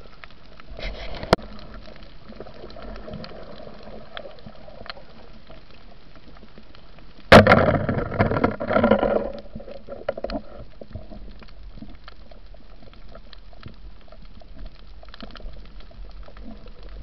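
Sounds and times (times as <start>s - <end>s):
faint underwater clicks: 0.0s - 17.0s
bubbling churning water: 1.2s - 5.5s.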